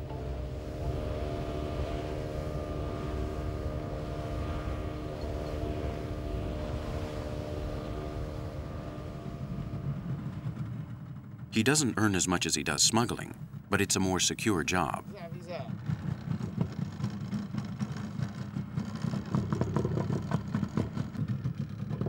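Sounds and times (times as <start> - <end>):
outboard motor running: 0.0 - 22.0.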